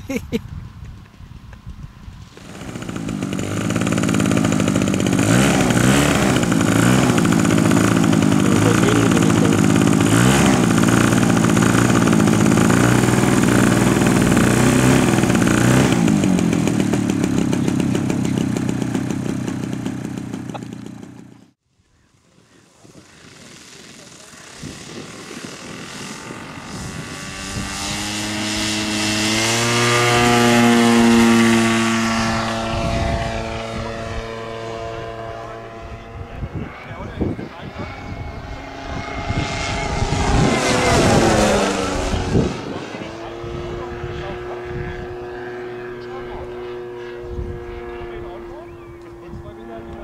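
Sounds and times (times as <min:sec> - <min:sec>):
plane passing low: 0:00.0 - 0:50.0
model plane engine and propeller: 0:00.1 - 0:50.0.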